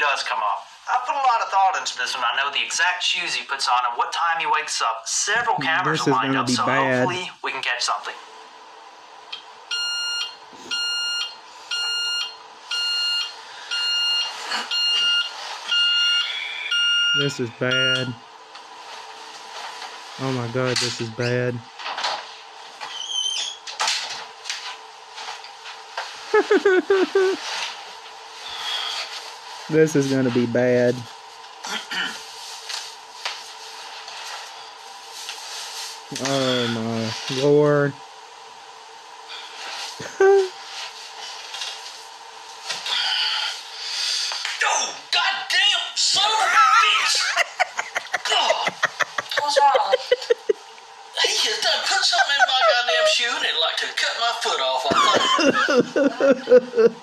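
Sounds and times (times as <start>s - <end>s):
faint steady hum: 0.0s - 57.0s
alarm clock beeping: 9.7s - 18.2s.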